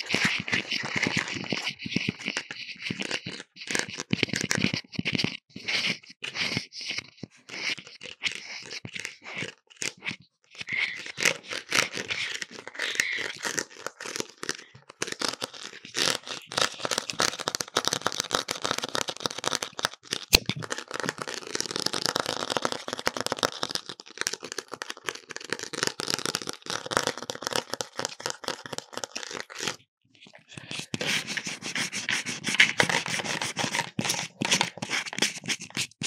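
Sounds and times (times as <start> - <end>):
fingernails scratching on plastic: 0.0 - 19.5, 24.8 - 36.0.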